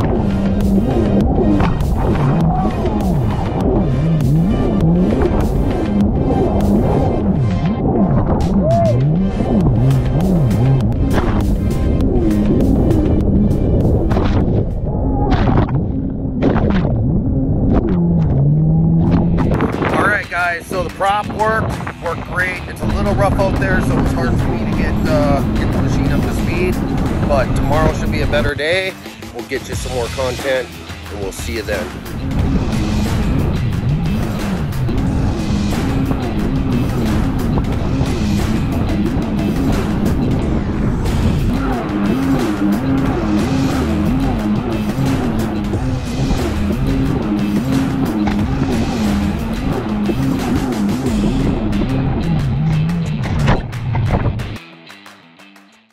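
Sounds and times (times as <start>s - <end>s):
jet ski engine running hard: 0.0s - 14.2s, 18.1s - 53.6s
background music: 0.0s - 55.9s.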